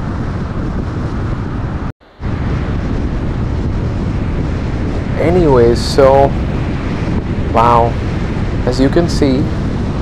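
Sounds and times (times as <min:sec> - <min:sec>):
car road and wind noise: 0:00.0 - 0:10.0.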